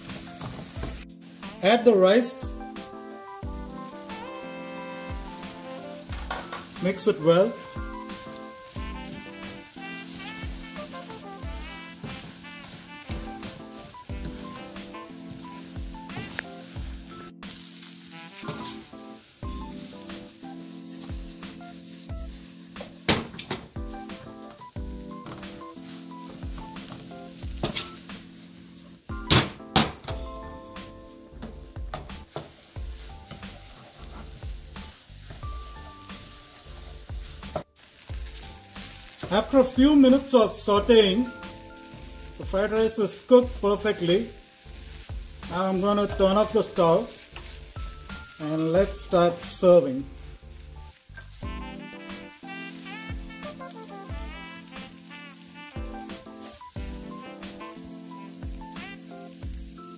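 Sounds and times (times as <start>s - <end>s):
background music: 0.0s - 59.9s
rice sizzling in a wok: 0.0s - 59.9s.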